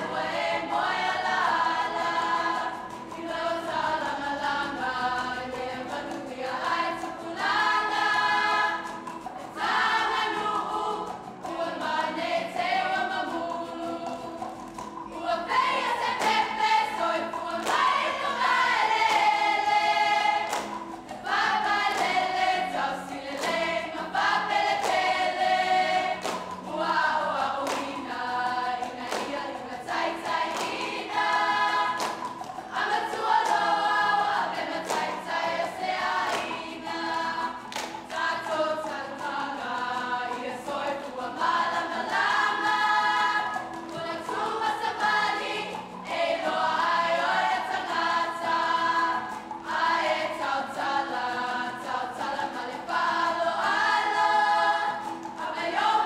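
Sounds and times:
strummed guitars: 0:00.0 - 0:56.0
women singing together: 0:00.0 - 0:56.0.

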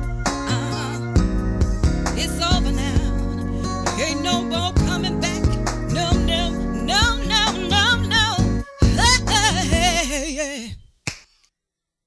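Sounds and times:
sharp snap: 0:11.0 - 0:11.3.

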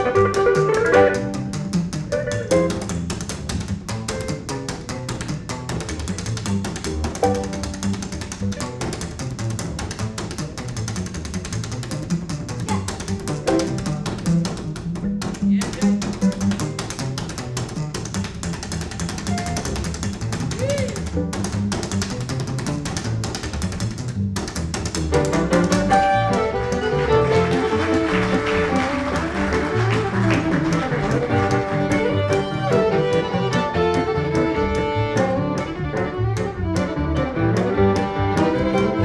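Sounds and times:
fiddle playing lead: 0:00.0 - 0:02.9, 0:25.1 - 0:39.0
archtop guitar: 0:00.0 - 0:39.0
slap double bass: 0:00.0 - 0:39.0.

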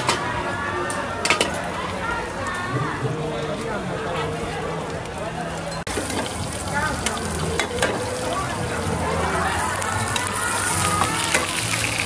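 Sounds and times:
faint voices: 0:00.0 - 0:12.0
food sizzling: 0:00.0 - 0:12.0.

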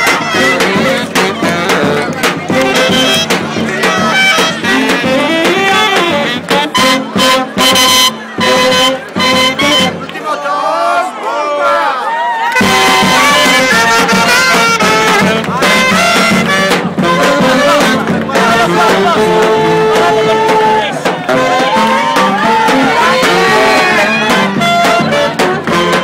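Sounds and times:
street brass band playing: 0:00.0 - 0:11.1, 0:12.4 - 0:26.0.

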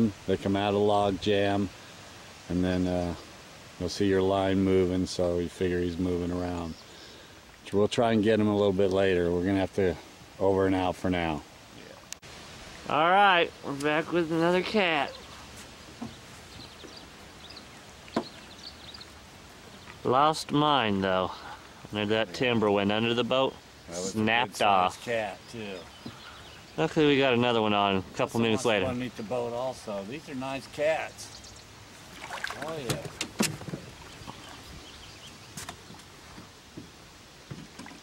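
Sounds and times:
faint steady background noise: 0:00.0 - 0:38.0
small birds chirping: 0:04.0 - 0:12.2, 0:12.9 - 0:38.0.

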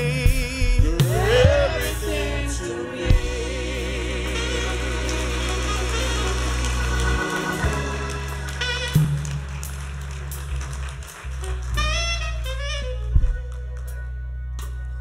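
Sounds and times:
instrumental church music: 0:00.0 - 0:15.0.

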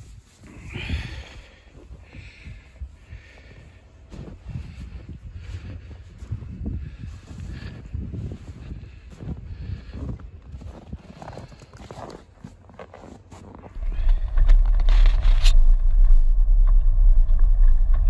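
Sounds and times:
wind buffeting microphone: 0:00.0 - 0:11.5, 0:13.7 - 0:18.0
footsteps in deep snow: 0:00.0 - 0:16.6.

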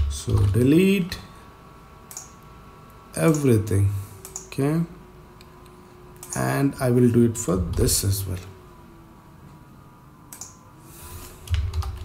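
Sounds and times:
keyboard keys clicking: 0:00.0 - 0:00.6, 0:11.4 - 0:12.0.

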